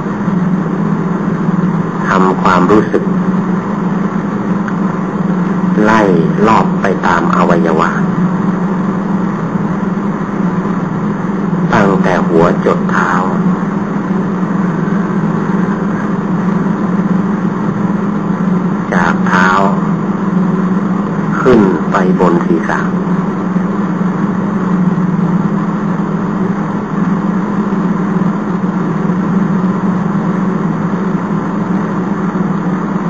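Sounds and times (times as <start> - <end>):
low hum with hiss: 0.0 - 33.0
man speaking: 2.0 - 3.2, 5.8 - 8.1, 11.7 - 13.5, 18.9 - 19.9, 21.3 - 23.0.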